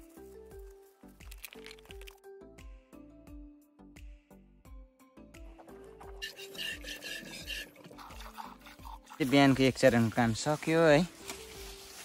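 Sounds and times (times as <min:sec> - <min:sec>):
milk spurting into pail: 0:01.2 - 0:02.2, 0:06.0 - 0:09.6.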